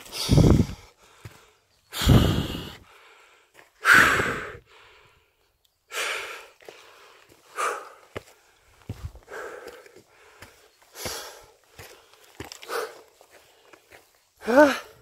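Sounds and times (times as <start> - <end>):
footsteps on dirt trail: 0.0 - 3.8, 6.2 - 15.0
person breathing hard: 0.0 - 15.0.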